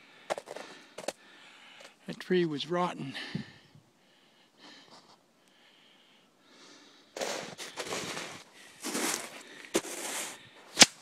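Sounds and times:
person breathing heavily: 0.0 - 2.0, 3.0 - 10.8
footsteps crunching snow: 7.2 - 11.0.

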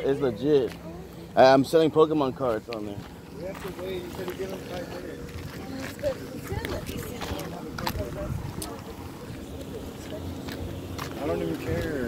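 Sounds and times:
faint voices: 0.0 - 12.0
footsteps on dirt road: 0.0 - 12.0
wind rumbling on microphone: 5.3 - 9.6.

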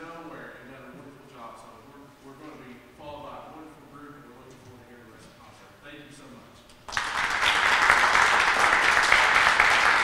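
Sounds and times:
man talking into a microphone: 0.0 - 6.6.

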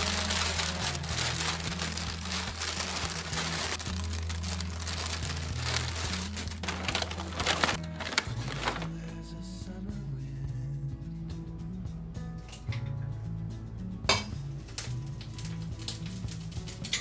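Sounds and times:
plastic bag crinkling: 0.0 - 9.0
background music: 0.0 - 17.0.

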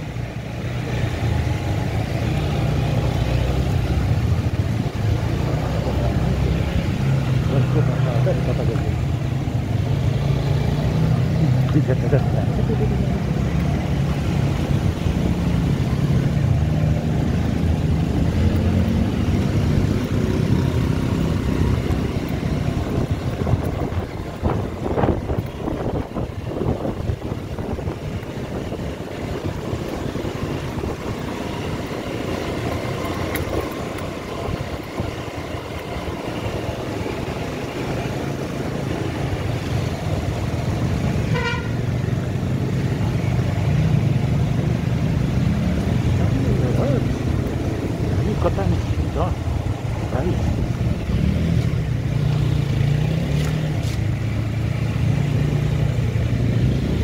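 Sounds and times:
motorcycle engine running: 0.0 - 57.0
vehicle horn beeps: 41.3 - 41.8.

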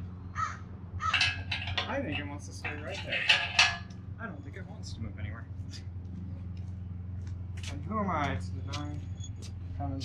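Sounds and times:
crows cawing: 0.3 - 1.4.

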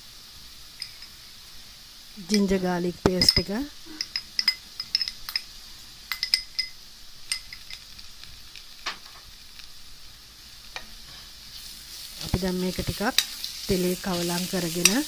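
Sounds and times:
faint oil sizzle: 0.0 - 15.0
metal spoon clinking on glass bowl: 3.2 - 5.5, 6.1 - 7.8.

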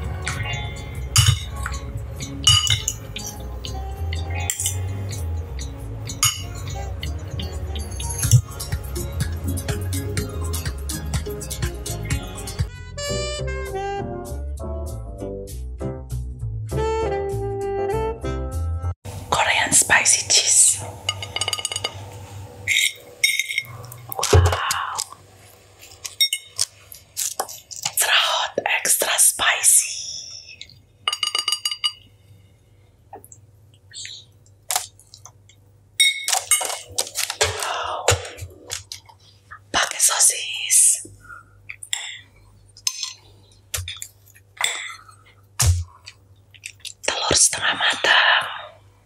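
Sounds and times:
background music: 0.0 - 19.5
person whispering: 19.3 - 20.9, 24.2 - 25.2, 27.9 - 30.6, 37.4 - 38.6, 39.5 - 41.2, 47.0 - 48.8.

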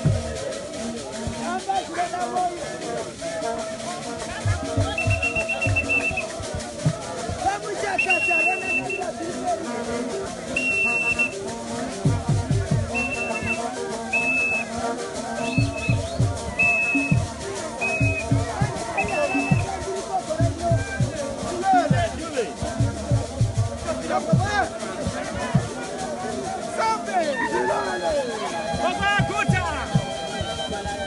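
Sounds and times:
group singing in chorus: 0.0 - 31.0
whistle blasts: 4.9 - 6.3, 7.9 - 9.1, 10.6 - 11.4, 12.9 - 14.8, 15.4 - 19.7.

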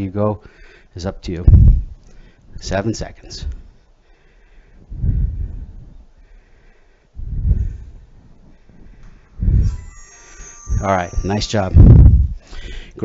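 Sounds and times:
faint breathing: 0.4 - 1.0, 2.0 - 2.6, 3.4 - 13.0.

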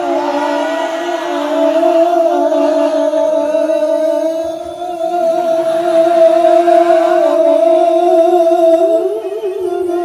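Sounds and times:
man singing into a microphone: 0.0 - 10.0.

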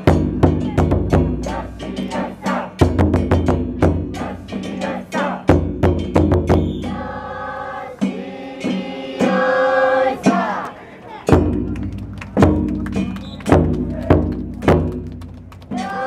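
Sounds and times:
taiko drum booming: 0.0 - 4.3, 5.5 - 7.0
group of voices chanting: 0.5 - 3.0, 3.8 - 5.7, 6.8 - 11.3, 15.7 - 16.0.

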